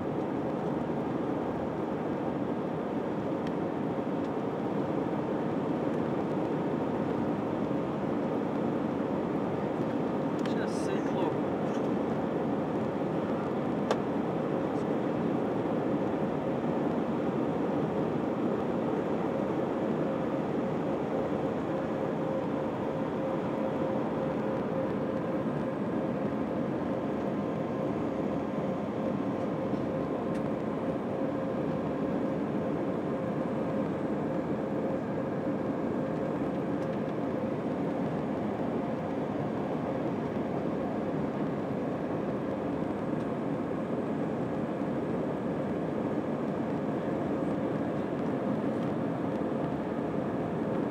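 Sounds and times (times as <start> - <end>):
jet engine rush in cabin: 0.0 - 50.9
steady cabin hum: 0.0 - 50.9.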